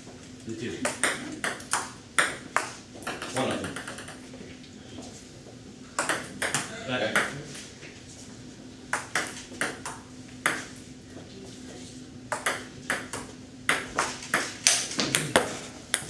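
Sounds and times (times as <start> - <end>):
ping pong ball clicking off paddles: 0.8 - 4.3, 6.0 - 7.4, 8.9 - 10.8, 12.3 - 16.0.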